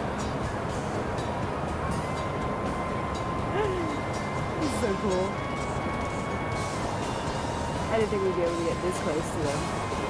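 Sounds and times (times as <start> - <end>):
background music held notes: 0.0 - 10.0
steady rushing noise: 0.0 - 10.0.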